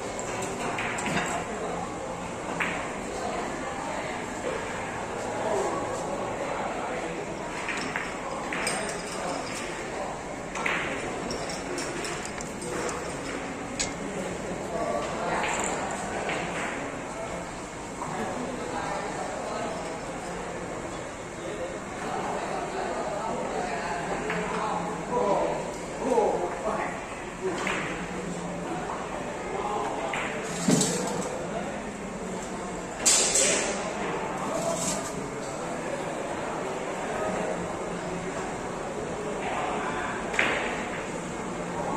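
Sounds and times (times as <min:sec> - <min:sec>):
murmur of voices: 0:00.0 - 0:41.9.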